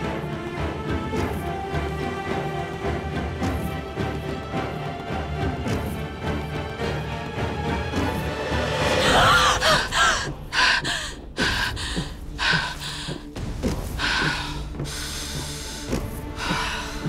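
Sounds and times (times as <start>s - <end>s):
dramatic orchestral score: 0.0s - 17.0s
breathy gasps: 9.0s - 13.3s.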